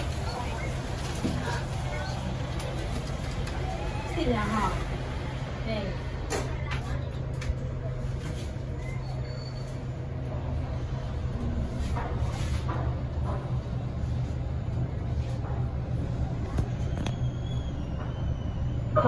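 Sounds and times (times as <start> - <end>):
faint voices: 0.0 - 12.3
lift low hum: 0.0 - 19.0.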